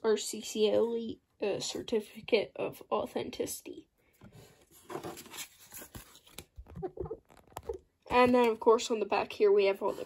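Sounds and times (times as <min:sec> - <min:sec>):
paper card rustling and scraping: 0:04.2 - 0:08.6
cardboard box handled: 0:04.3 - 0:08.4.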